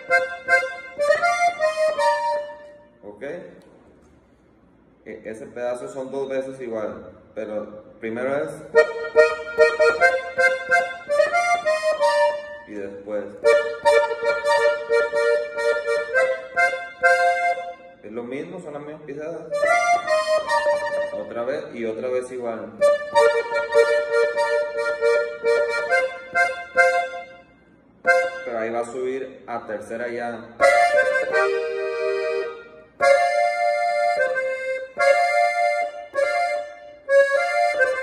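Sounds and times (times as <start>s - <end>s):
accordion melody notes: 0.0s - 4.6s, 8.2s - 18.8s, 19.4s - 29.1s, 29.7s - 38.0s.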